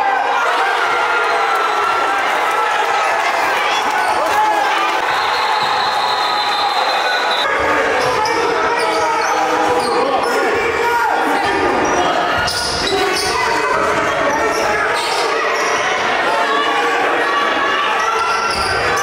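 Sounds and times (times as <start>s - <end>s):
people chattering and calling: 0.0s - 19.0s.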